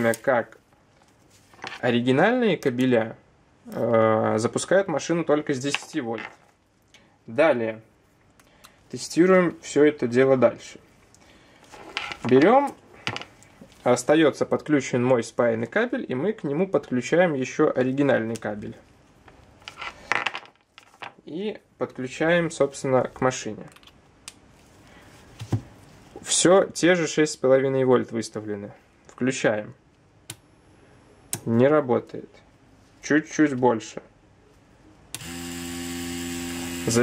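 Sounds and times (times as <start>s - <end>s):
tattoo machine humming: 35.2s - 37.0s.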